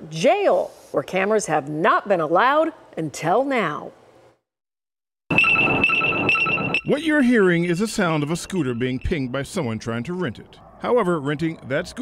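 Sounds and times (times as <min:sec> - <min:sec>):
electric scooter alert tone: 0:05.3 - 0:07.0.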